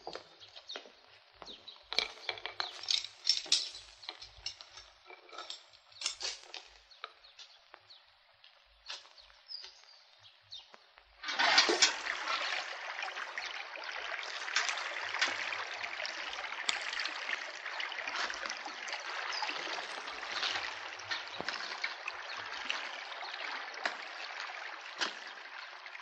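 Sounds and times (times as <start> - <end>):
shallow stream running: 0.0 - 26.0
water splashes: 11.2 - 26.0.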